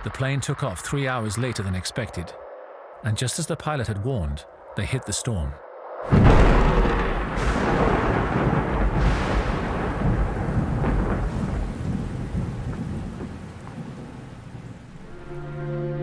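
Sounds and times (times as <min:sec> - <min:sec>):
rolling thunder: 0:06.0 - 0:15.2
sharp thunder cracks: 0:06.1 - 0:15.0
heavy rain: 0:06.1 - 0:16.0.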